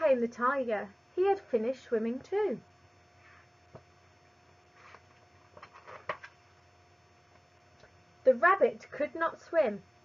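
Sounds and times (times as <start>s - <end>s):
book page turning: 4.7s - 6.4s.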